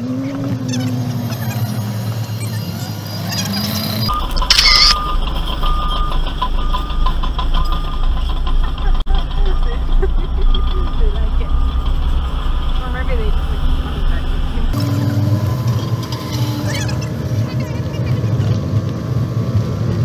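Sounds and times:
car engine rumbling: 0.0 - 20.0
short beeps: 2.3 - 18.1.

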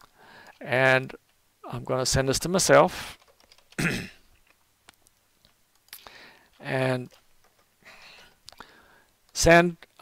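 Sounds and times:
computer keyboard clicks: 3.2 - 3.8, 4.4 - 7.7.

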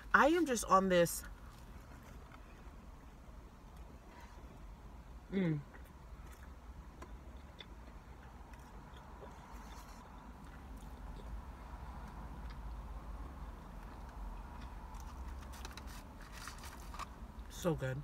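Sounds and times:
close-up chewing: 5.7 - 17.1.

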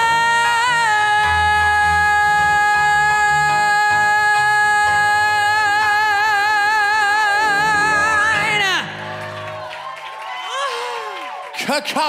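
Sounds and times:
singer belting a high note: 7.0 - 9.2
piano chords: 7.3 - 9.9.

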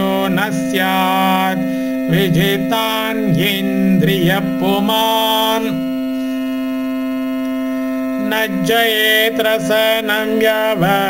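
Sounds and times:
musical drone: 0.0 - 11.0.

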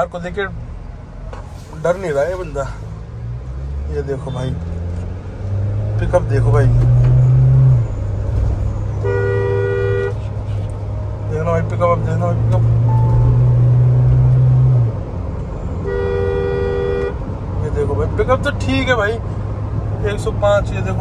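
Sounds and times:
deep engine and road drone: 0.0 - 21.0
car horn blasts: 9.0 - 10.3, 15.8 - 17.2.

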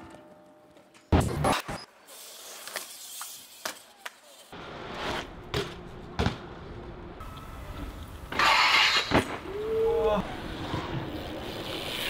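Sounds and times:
bike scraping grind: 1.8 - 5.6, 8.3 - 9.4, 10.2 - 12.0
rolling tyre noise: 2.2 - 12.0
person shouting: 9.5 - 10.2.

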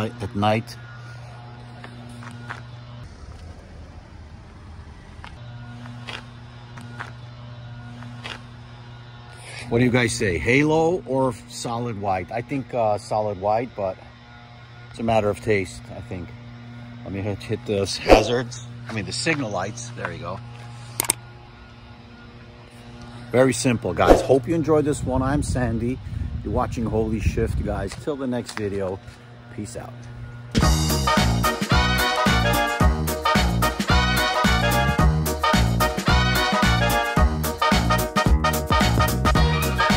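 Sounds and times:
low engine rumble: 0.0 - 9.3
steady low hum: 0.0 - 28.2, 29.0 - 30.6.

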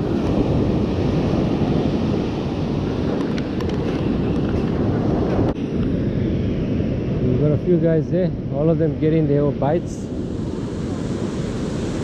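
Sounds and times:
ocean surf breaking: 0.0 - 7.3, 8.3 - 12.0
wind rumbling on microphone: 0.0 - 12.0.

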